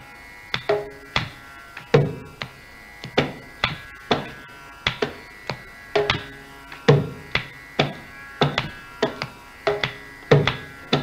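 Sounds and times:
steady drone: 0.0s - 11.0s
mridangam drum strokes: 0.5s - 11.0s.

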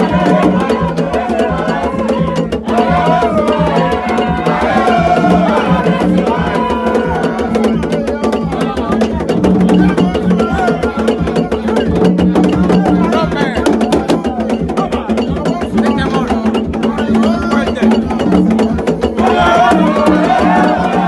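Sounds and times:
hand drums played rapidly: 0.0s - 21.0s
voices singing and calling: 0.0s - 21.0s.

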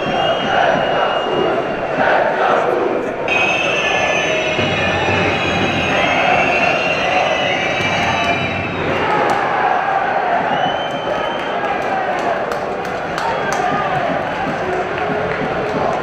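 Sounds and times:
shrill wavering whistling: 0.0s - 2.2s, 3.3s - 9.4s, 10.4s - 11.6s
stadium crowd voices: 0.0s - 16.0s.

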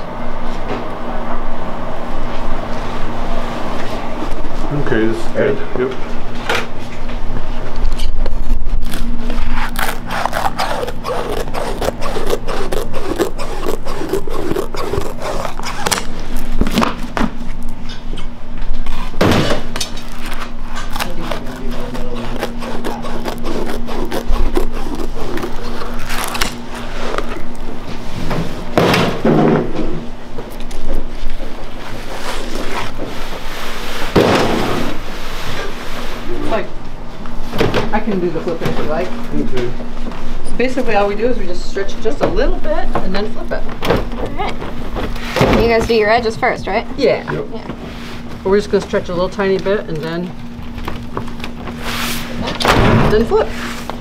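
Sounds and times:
knife scraping peanut brittle: 9.0s - 16.1s, 20.1s - 27.5s.

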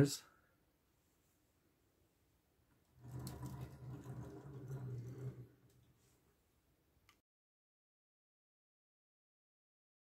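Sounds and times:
toy truck wheels rolling on wood: 2.9s - 6.0s.

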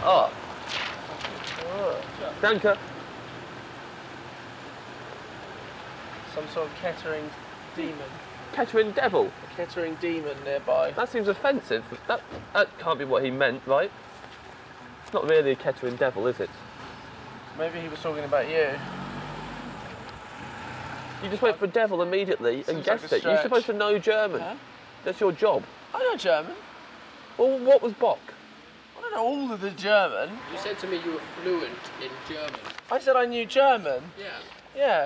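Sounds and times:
distant road traffic: 0.0s - 35.0s
light rain: 0.0s - 35.0s.

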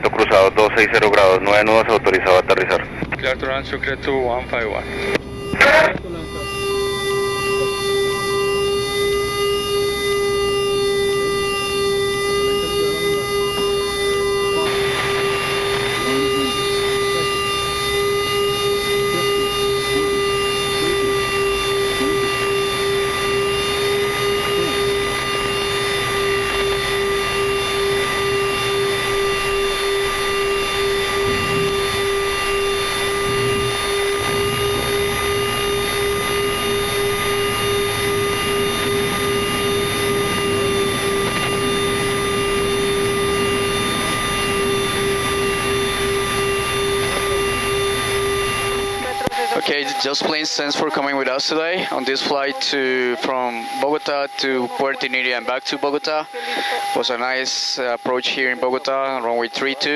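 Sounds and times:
engine and airflow rush: 0.0s - 49.5s
constant hum: 0.0s - 59.9s.

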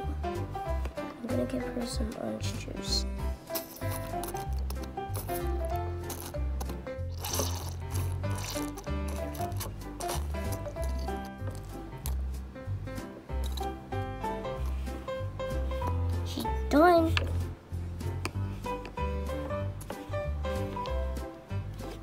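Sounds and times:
music with steady bass beat: 0.0s - 7.2s, 7.8s - 16.3s, 17.2s - 22.0s.

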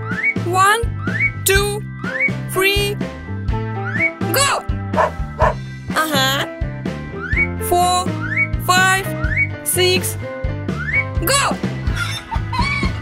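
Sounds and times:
bright cartoon music: 0.2s - 13.0s
dog barking: 5.0s - 5.6s.

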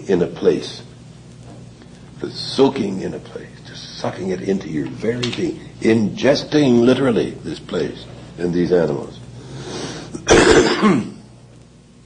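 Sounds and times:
person coughing: 10.1s - 11.2s.

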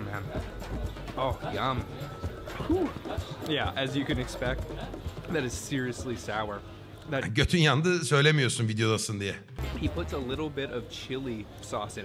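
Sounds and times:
background music: 0.0s - 12.0s
men speaking: 0.0s - 12.0s.

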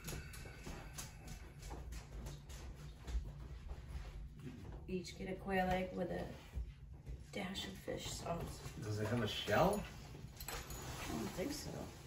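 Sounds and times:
low hum: 0.0s - 8.9s.

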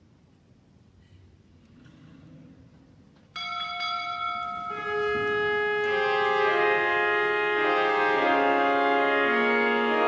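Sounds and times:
pipe organ chord: 3.6s - 10.0s.

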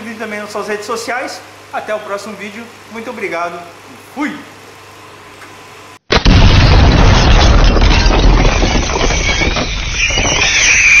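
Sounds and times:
explosion rumble: 6.1s - 11.0s
high wavering screech: 7.9s - 11.0s.

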